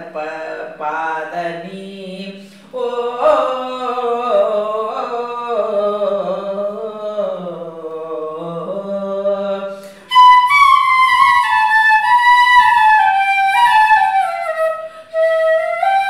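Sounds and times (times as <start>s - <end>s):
woman singing unaccompanied: 0.0s - 12.6s.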